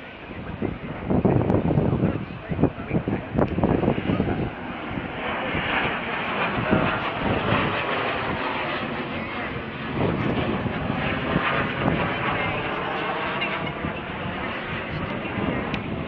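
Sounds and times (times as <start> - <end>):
aircraft engine drone overhead: 0.0 - 16.0.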